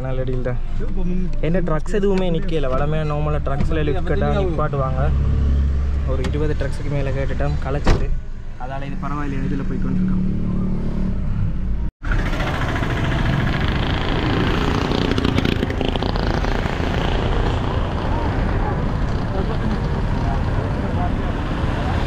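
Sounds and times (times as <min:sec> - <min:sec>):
car road and wind noise: 0:00.0 - 0:22.0
street traffic: 0:00.0 - 0:22.0.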